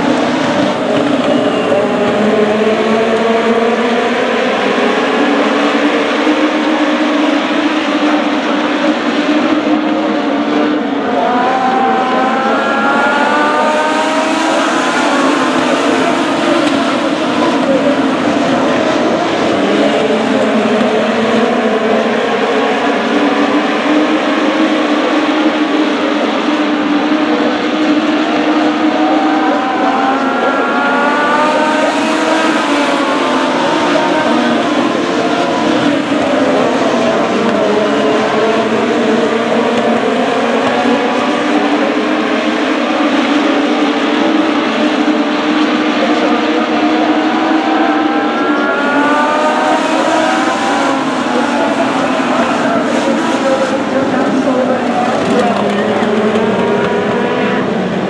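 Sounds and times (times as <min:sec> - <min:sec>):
race car engines at high revs: 0:00.0 - 0:58.0.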